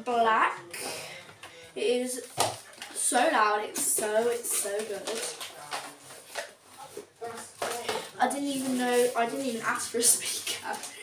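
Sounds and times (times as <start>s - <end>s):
tissue paper rustling: 3.4s - 10.8s.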